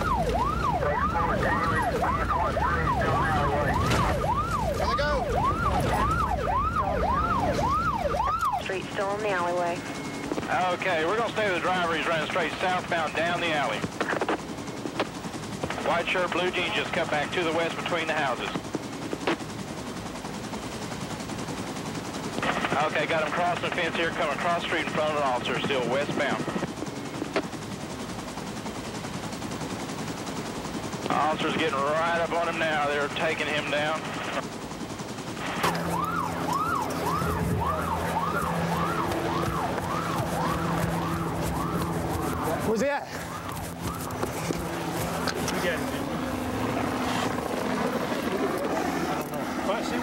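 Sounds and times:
police siren cycling: 0:00.0 - 0:19.4, 0:35.3 - 0:49.4
helicopter rotor chop: 0:00.0 - 0:50.0
steady low hum: 0:34.0 - 0:49.6.

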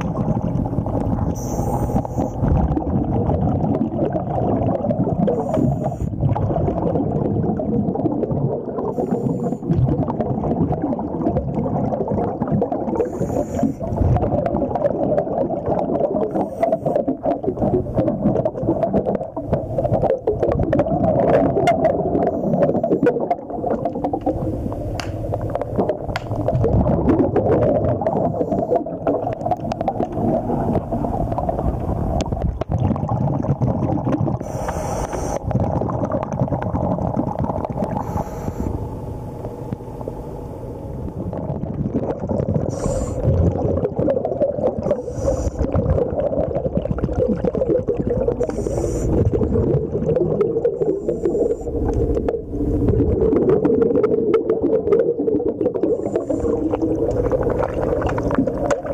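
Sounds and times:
underwater bubbling rumble: 0:00.0 - 0:58.9
short hisses: 0:42.7 - 0:43.2.

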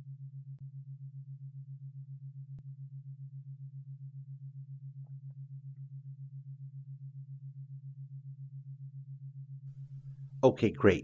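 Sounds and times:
pulsing low hum: 0:00.0 - 0:10.4.

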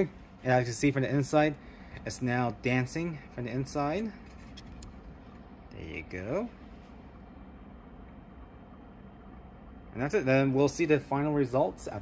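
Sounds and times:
faint low hum of curing station: 0:00.0 - 0:12.0.

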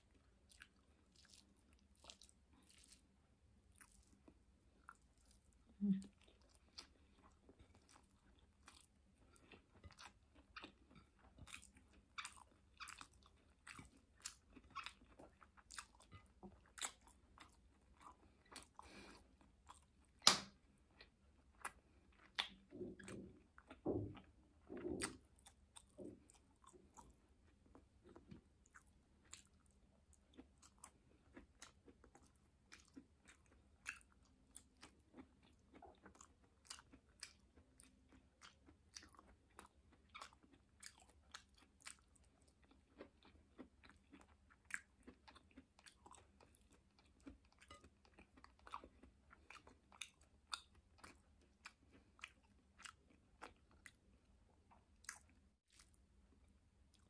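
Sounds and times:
person chewing food: 0:00.0 - 0:57.0.

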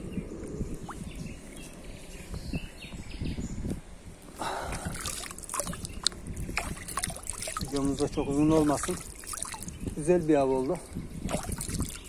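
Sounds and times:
river water sloshing: 0:04.4 - 0:10.1, 0:11.3 - 0:12.0.

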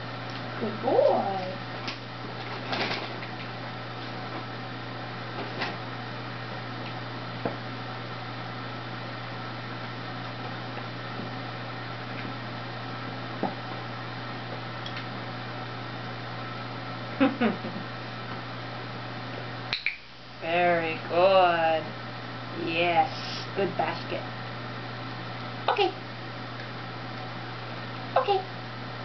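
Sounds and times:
low room hum: 0:00.0 - 0:29.0.

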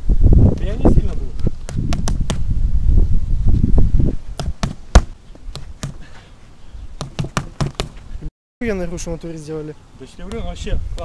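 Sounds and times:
gloved punches on tyres: 0:01.7 - 0:02.4, 0:04.4 - 0:06.0, 0:07.0 - 0:08.0.

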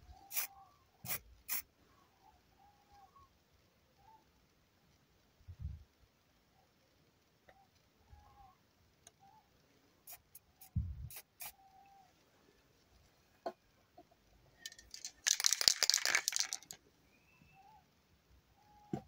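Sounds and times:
spray paint can hissing: 0:00.3 - 0:01.7, 0:10.1 - 0:11.6, 0:14.9 - 0:16.8.

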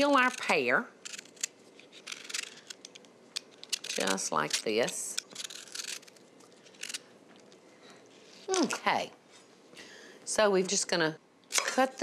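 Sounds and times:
vegetable peeler scraping pear: 0:00.0 - 0:02.7, 0:03.7 - 0:06.2.

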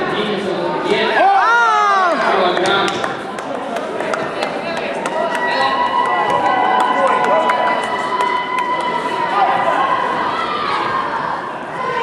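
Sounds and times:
voices and chatter: 0:00.0 - 0:12.0.

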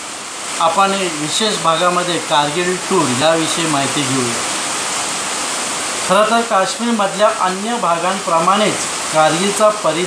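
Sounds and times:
steady hiss: 0:00.0 - 0:10.0
man speaking: 0:00.6 - 0:04.5, 0:06.1 - 0:10.0.

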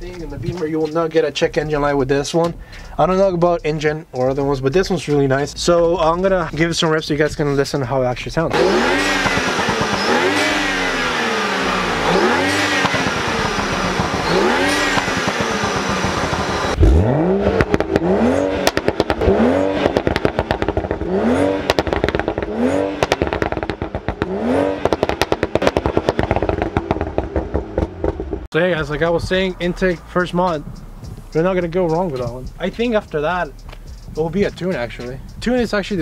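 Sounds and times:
exhaust crackling: 0:00.0 - 0:36.0
car engine revving in blips: 0:08.4 - 0:36.0.

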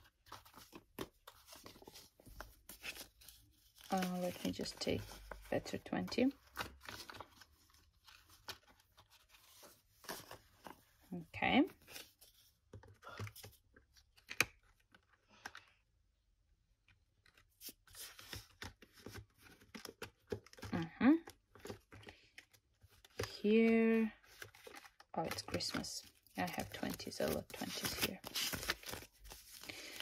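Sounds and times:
paper banknotes rustling: 0:00.0 - 0:10.8, 0:24.2 - 0:30.0.

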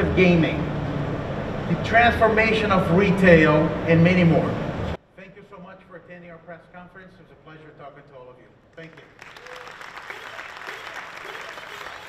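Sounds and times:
audience applauding: 0:08.8 - 0:12.0.

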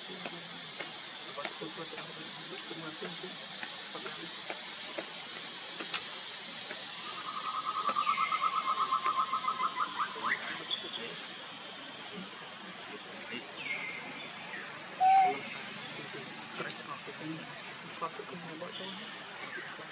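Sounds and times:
insects hissing with high whine: 0:00.0 - 0:19.9.

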